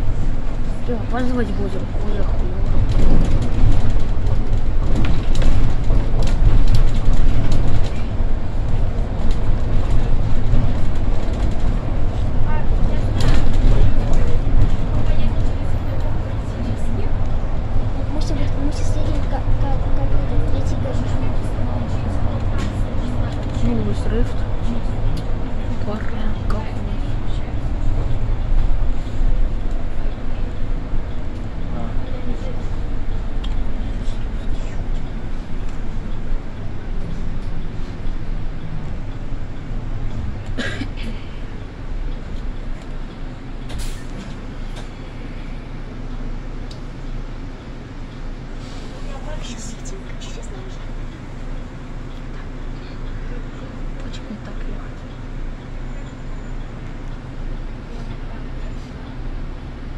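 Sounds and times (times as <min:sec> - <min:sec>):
bus engine and road rumble: 0:00.0 - 0:59.9.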